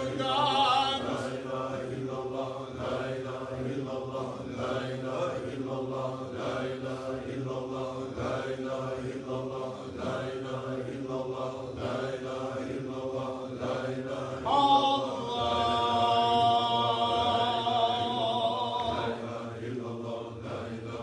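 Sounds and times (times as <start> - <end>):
group chanting in unison: 0.0 - 21.0.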